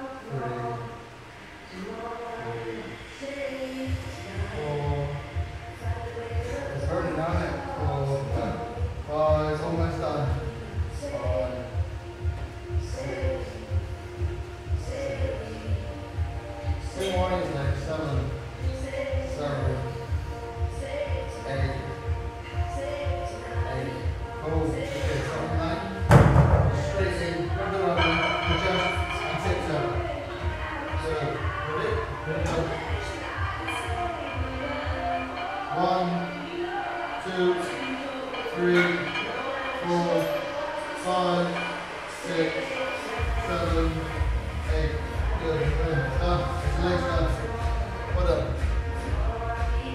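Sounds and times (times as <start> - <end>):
background music: 0.0 - 49.9
low repeated thuds: 26.0 - 27.2.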